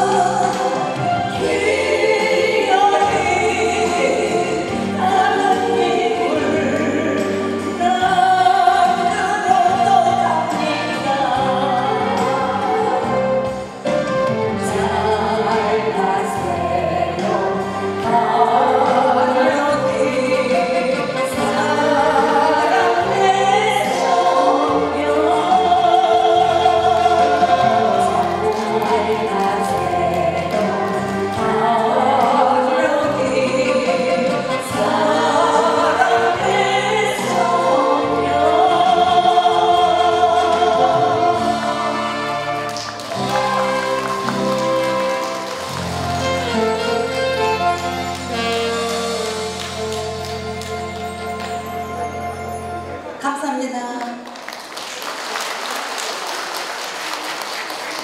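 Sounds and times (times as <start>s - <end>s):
woman singing into microphone: 0.0s - 13.7s, 14.4s - 42.6s
instrumental backing track: 0.0s - 53.2s
trot accompaniment with bass line: 0.0s - 53.2s.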